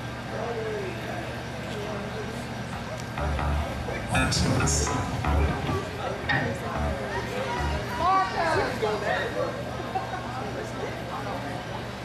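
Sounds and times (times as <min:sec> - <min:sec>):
crowd chatter: 0:00.0 - 0:12.0
sound system hum: 0:02.2 - 0:08.7.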